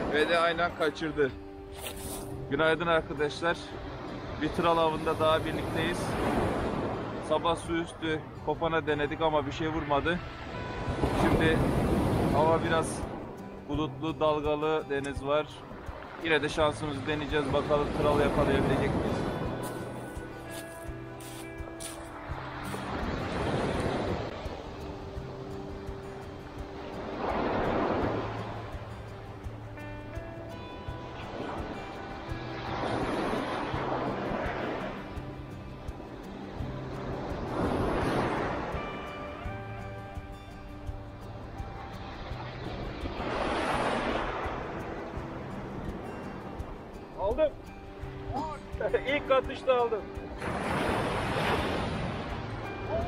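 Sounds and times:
background music: 0:00.0 - 0:53.0
waves washing up pebble beach: 0:03.3 - 0:07.7, 0:15.8 - 0:29.2, 0:29.8 - 0:39.7, 0:41.7 - 0:47.4, 0:48.3 - 0:53.0.

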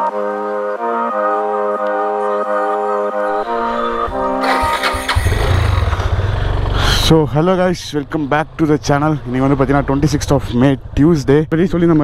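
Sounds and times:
motorcycle engine running: 0:04.4 - 0:12.0.

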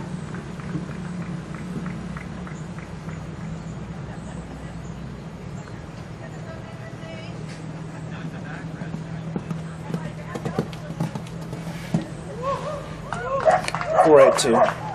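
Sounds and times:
steady low hum: 0:00.0 - 0:14.0
voices: 0:01.0 - 0:14.9
hoofbeats on sand: 0:08.1 - 0:12.3.

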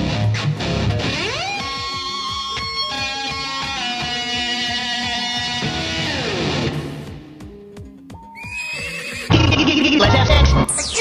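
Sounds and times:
warbling sampled sound: 0:09.3 - 0:11.0.

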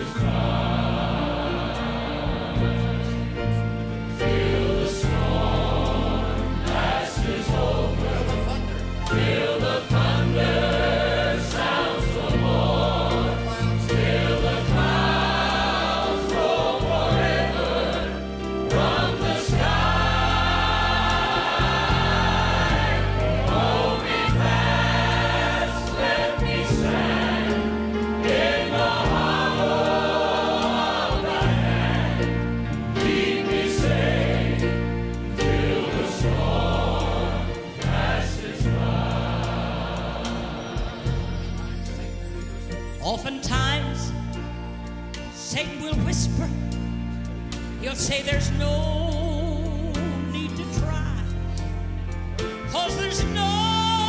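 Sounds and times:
choir singing gospel: 0:00.0 - 0:54.0
grand piano: 0:00.0 - 0:54.0.

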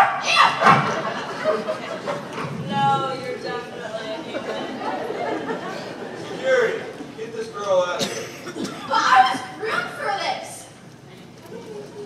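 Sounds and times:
performers talking: 0:00.0 - 0:12.0.

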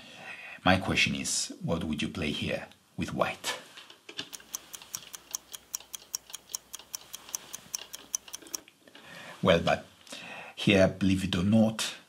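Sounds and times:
chess clock ticking: 0:04.2 - 0:08.6.

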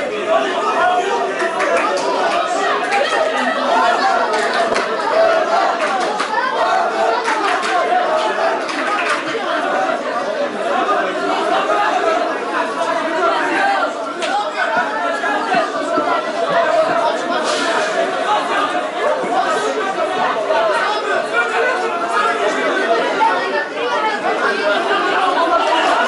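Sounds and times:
crowd chatter: 0:00.0 - 0:26.0.

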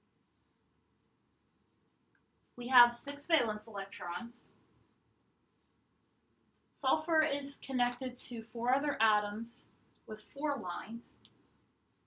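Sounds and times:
marker writing on whiteboard: 0:11.2 - 0:12.0.

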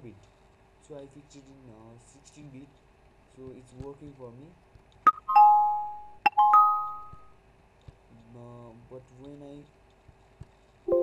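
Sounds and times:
chime ringing: 0:05.1 - 0:07.3.

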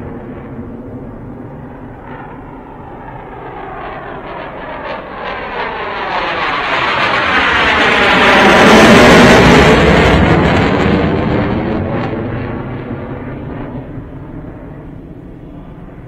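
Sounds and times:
jet taking off on afterburner: 0:00.0 - 0:16.0.

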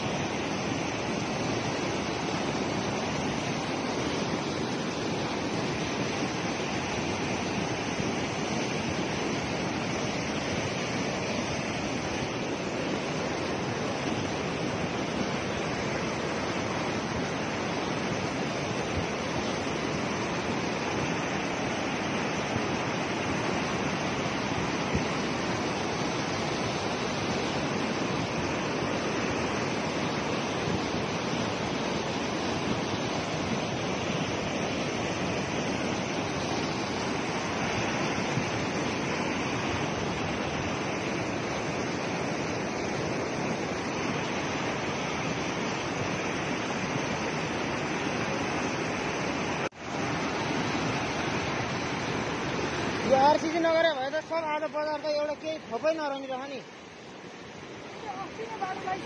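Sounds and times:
floodwater rushing: 0:00.0 - 0:59.0.

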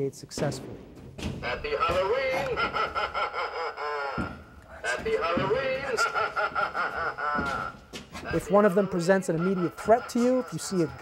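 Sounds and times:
recorded voice speaking: 0:00.0 - 0:00.7, 0:08.3 - 0:11.0
cackling recorded laugh: 0:01.4 - 0:11.0.

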